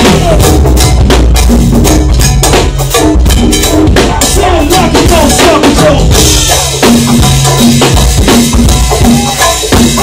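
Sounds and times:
drum kit: 0:00.0 - 0:10.0
hand percussion: 0:00.0 - 0:10.0
heavy bass line: 0:00.0 - 0:10.0.

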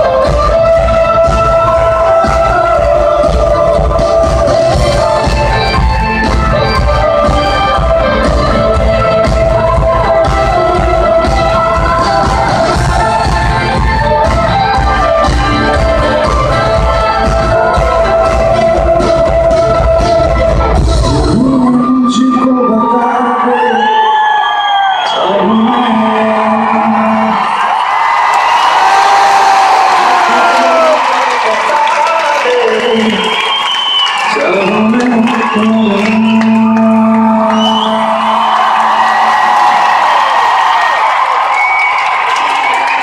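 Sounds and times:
live music: 0:00.0 - 0:43.0
audience cheering and whooping: 0:21.3 - 0:43.0.

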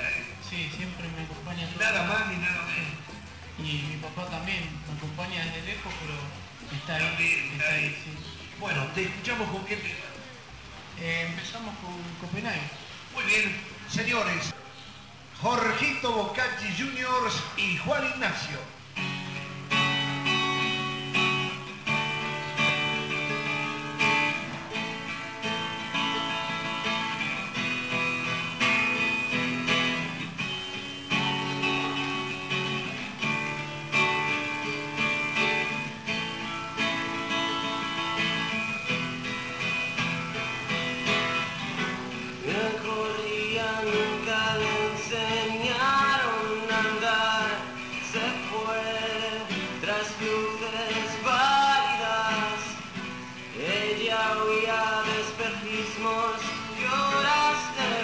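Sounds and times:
acoustic guitars playing: 0:00.0 - 0:58.0
man singing: 0:42.3 - 0:58.0.

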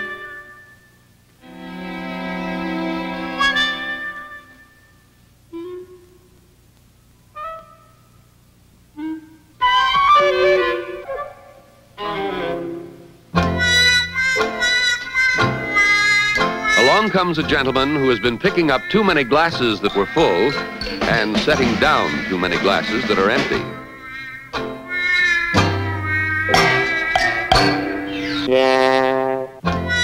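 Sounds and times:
instrumental background music: 0:12.0 - 0:30.0.

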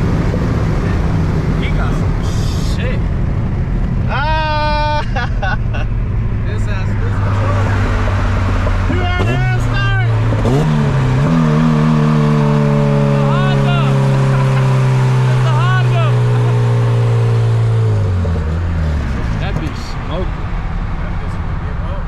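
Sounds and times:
car engine revving and droning: 0:00.0 - 0:22.0
person calling out: 0:04.1 - 0:05.2.

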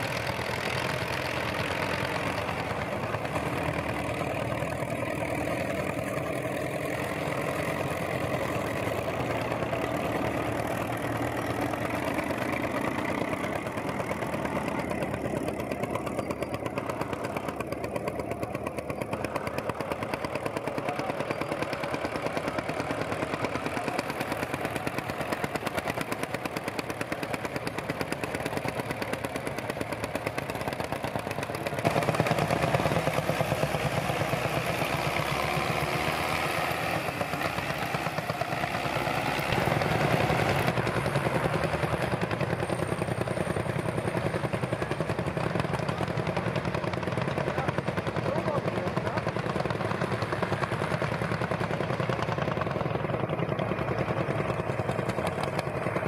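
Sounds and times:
tractor engines chugging: 0:00.0 - 0:56.0.

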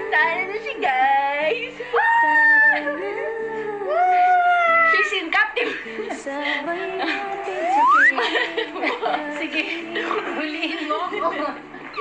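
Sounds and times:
high vocal wail: 0:07.0 - 0:09.0.

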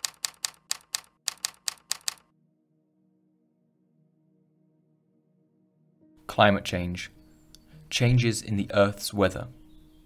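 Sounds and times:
typewriter keys striking: 0:00.0 - 0:02.3.

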